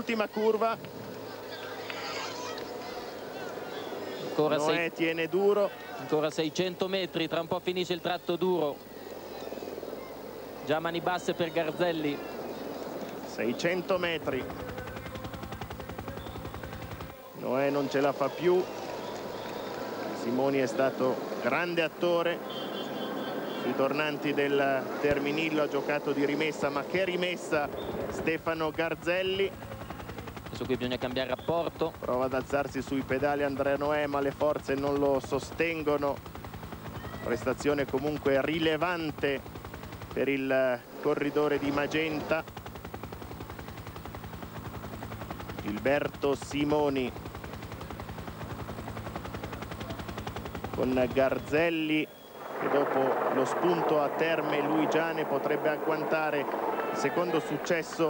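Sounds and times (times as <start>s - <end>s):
helicopter rotor chop: 0.0s - 58.0s.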